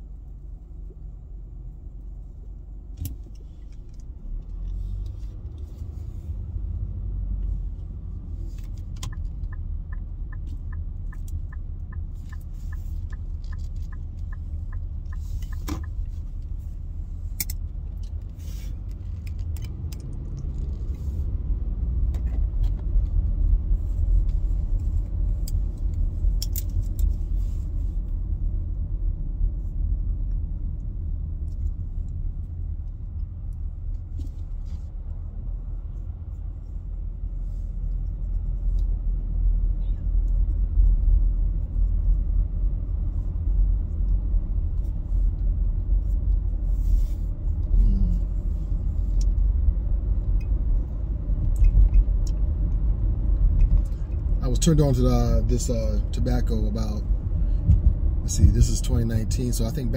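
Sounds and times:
car interior road and engine rumble: 0.0s - 59.9s.

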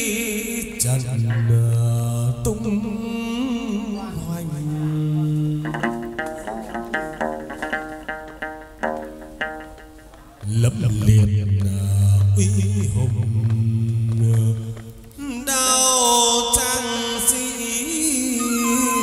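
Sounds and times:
plucked lute: 4.1s - 10.7s
held sung note: 18.1s - 19.0s
low held note: 18.3s - 19.0s.

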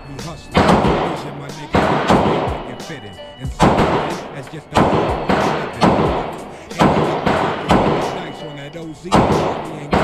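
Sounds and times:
gunshots with ringing echo: 0.5s - 3.0s, 3.6s - 10.0s.

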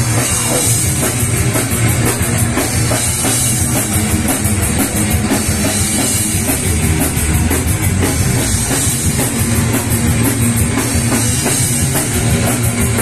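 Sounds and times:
fast drumming: 0.0s - 13.0s
live metal band playing: 0.0s - 13.0s.

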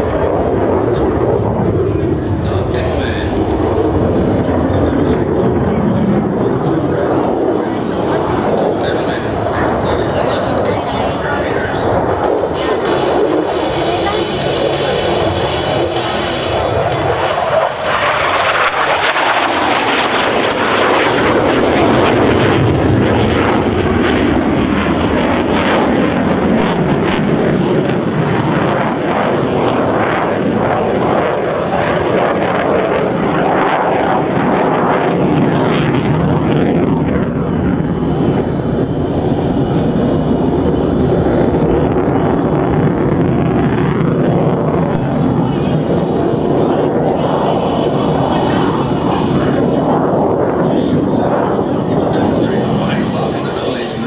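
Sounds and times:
jet engine roar: 0.0s - 54.0s.

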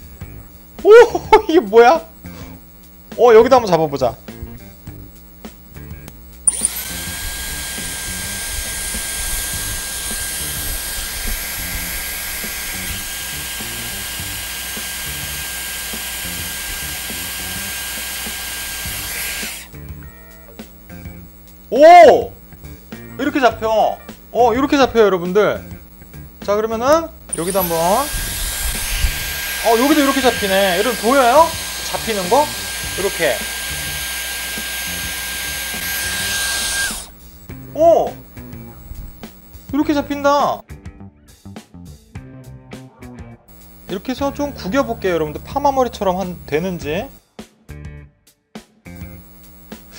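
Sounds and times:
hair styler air rush and motor whine: 6.5s - 19.8s, 27.3s - 37.5s.

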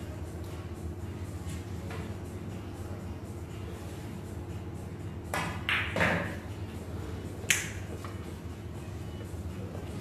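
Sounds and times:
billiard balls colliding: 5.3s - 6.4s.

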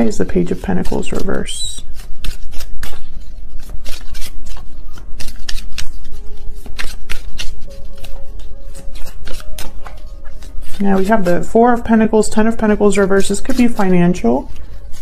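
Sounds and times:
cards being shuffled: 0.0s - 15.0s
soft background music: 0.0s - 15.0s.

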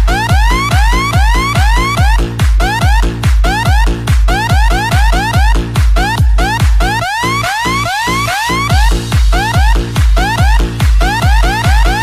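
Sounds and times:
electronic club dance music: 0.0s - 12.0s.

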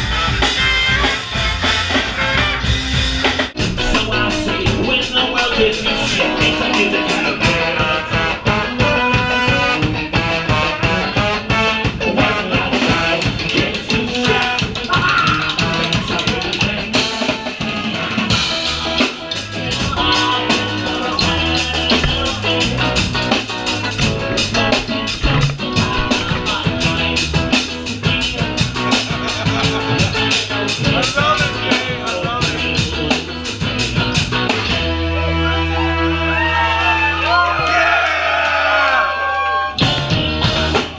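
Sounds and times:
trombone and trumpet horns: 0.0s - 13.2s
drum kit: 0.0s - 35.2s, 39.8s - 40.9s
electric guitar: 0.0s - 37.0s, 39.6s - 40.9s.

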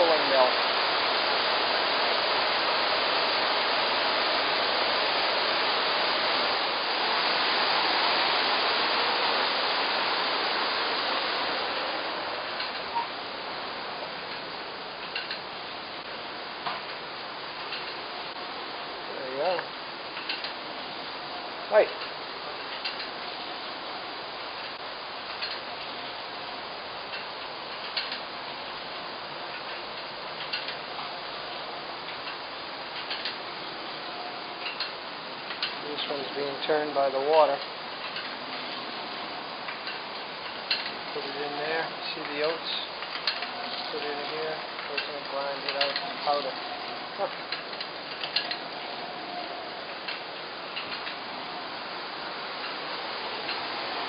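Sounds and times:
falling water rushing: 0.0s - 54.0s
sharp ticks of mill machinery: 14.1s - 18.0s, 19.4s - 20.6s, 21.7s - 23.2s, 24.4s - 26.2s, 26.8s - 51.3s.

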